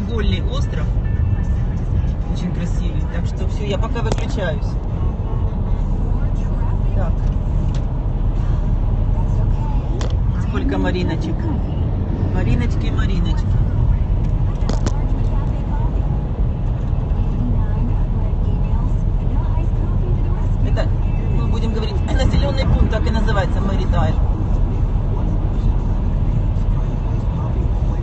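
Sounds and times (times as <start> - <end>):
car driving rumble: 0.0 - 28.0.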